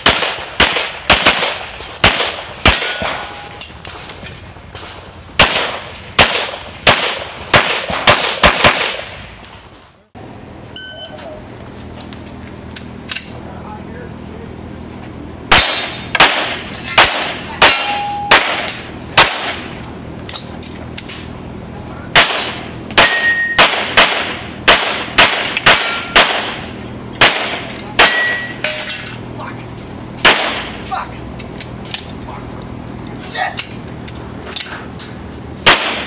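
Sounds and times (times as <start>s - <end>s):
pistol fire: 0.0s - 3.6s, 5.4s - 9.2s, 15.5s - 19.7s, 22.1s - 28.5s, 30.2s - 30.9s, 35.6s - 36.0s
metallic ring of steel targets: 2.0s - 3.8s, 15.5s - 21.2s, 22.1s - 29.2s.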